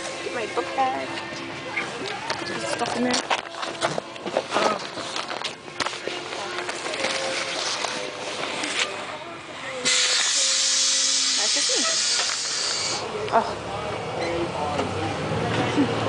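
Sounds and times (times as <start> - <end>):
bus air brakes hissing: 9.8 - 13.1.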